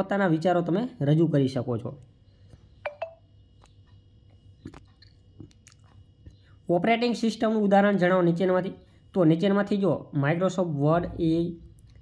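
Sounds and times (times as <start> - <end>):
faint steady high tone: 2.7 - 3.4
faint clicks and mouth noises: 3.6 - 6.6, 11.7 - 12.0.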